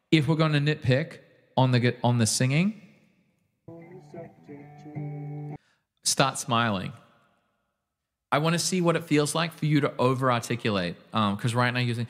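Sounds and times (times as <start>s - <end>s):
person singing: 3.7s - 5.6s.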